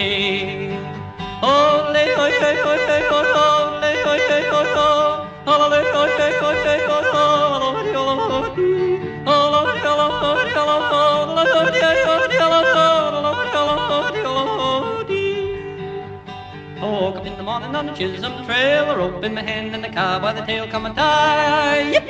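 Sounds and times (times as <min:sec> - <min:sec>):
man yodeling: 0:00.0 - 0:16.2, 0:16.8 - 0:22.0
instrumental backing: 0:00.0 - 0:22.0.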